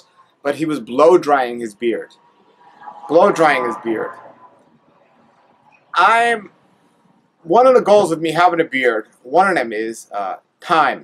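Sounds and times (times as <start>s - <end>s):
man speaking: 0.5s - 2.1s, 3.1s - 4.2s, 6.0s - 6.5s, 7.4s - 11.0s.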